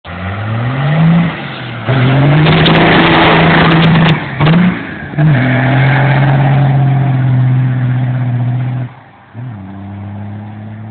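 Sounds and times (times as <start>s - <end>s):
diesel truck engine revving high: 0.1s - 10.9s
tires spinning: 0.1s - 10.9s.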